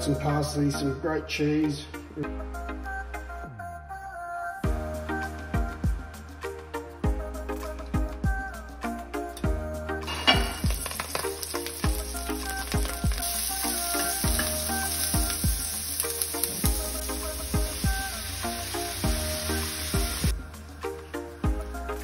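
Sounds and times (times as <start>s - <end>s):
background music with steady beat: 0.0s - 22.0s
onion sizzling in a frying pan: 10.0s - 20.4s.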